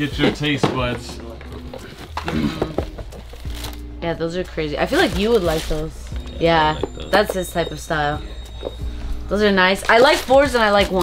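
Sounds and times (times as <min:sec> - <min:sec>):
tissue paper rustling: 0:04.8 - 0:07.3.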